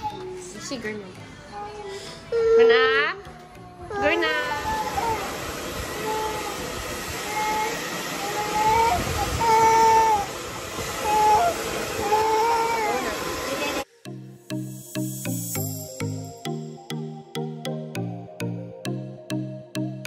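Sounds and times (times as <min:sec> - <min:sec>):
toddler whining: 0:00.0 - 0:00.4, 0:01.5 - 0:05.3, 0:06.0 - 0:06.6, 0:07.2 - 0:10.3, 0:11.0 - 0:13.3
steady rushing noise: 0:04.5 - 0:13.8.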